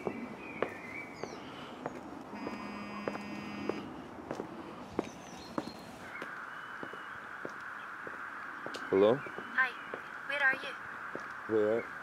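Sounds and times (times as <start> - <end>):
footsteps on paved street: 0.0 - 12.0
electronic buzz: 2.3 - 3.9.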